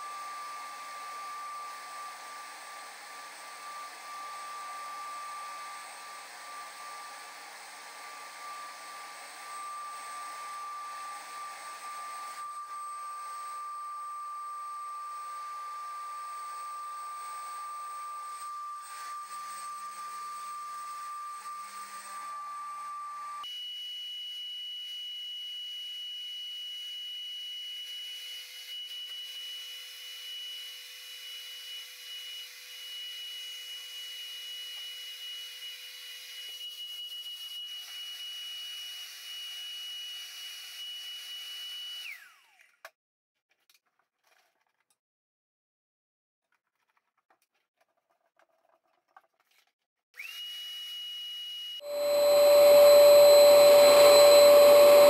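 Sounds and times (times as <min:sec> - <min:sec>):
paint sprayer whine and air hiss: 0:00.0 - 0:23.4, 0:51.8 - 0:55.0.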